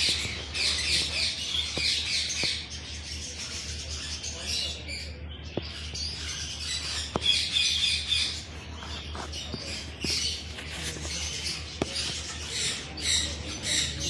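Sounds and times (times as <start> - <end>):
small birds chirping: 0.0 - 14.0.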